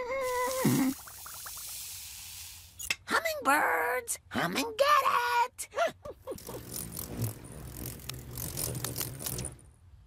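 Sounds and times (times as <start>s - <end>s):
wings whirring buzz: 6.3s - 9.8s.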